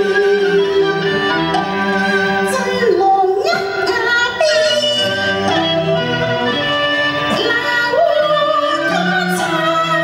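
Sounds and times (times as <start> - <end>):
instrumental accompaniment: 0.0 - 10.0
woman singing opera: 7.3 - 10.0.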